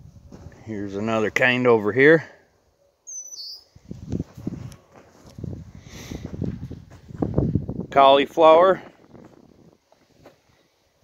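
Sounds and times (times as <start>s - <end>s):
footsteps on soft soil: 0.0s - 1.2s, 3.9s - 7.8s, 8.7s - 10.6s.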